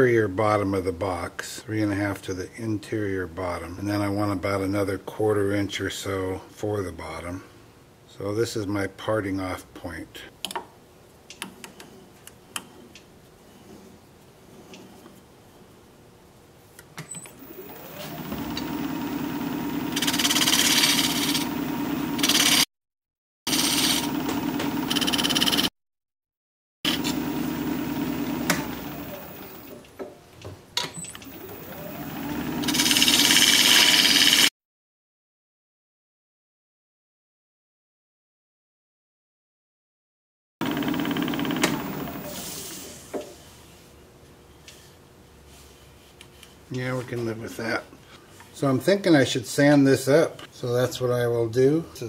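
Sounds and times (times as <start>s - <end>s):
wood lathe humming: 17.4s - 22.6s, 23.5s - 25.7s, 26.9s - 29.8s, 31.3s - 34.5s, 40.6s - 42.4s
tool scraping spinning wood: 19.6s - 22.7s, 23.5s - 25.7s, 31.3s - 34.5s.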